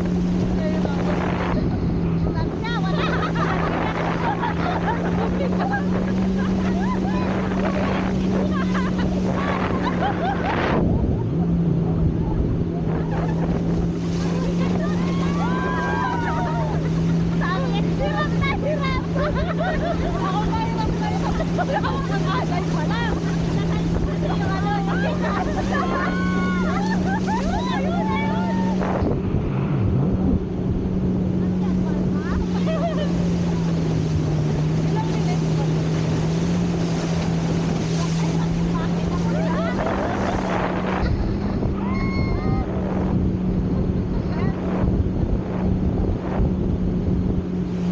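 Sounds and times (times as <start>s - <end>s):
people talking and laughing: 0.0s - 46.5s
motorboat engine droning: 0.0s - 47.9s
water rushing: 0.0s - 47.9s
wind on microphone: 0.0s - 47.9s.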